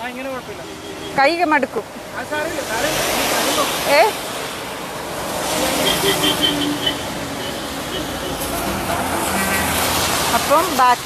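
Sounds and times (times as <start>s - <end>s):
tyres hissing on wet road: 0.0s - 11.0s.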